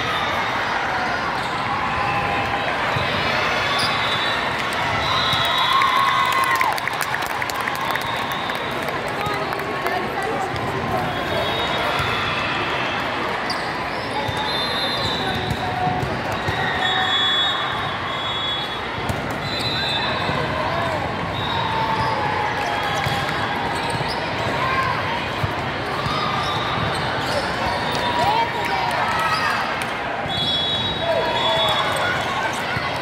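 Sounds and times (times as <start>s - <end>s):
many voices talking: 0.0s - 5.8s, 6.6s - 33.0s
sneaker squeaks: 1.3s - 1.7s, 3.6s - 4.4s, 13.4s - 20.5s, 21.3s - 24.6s, 25.9s - 28.4s.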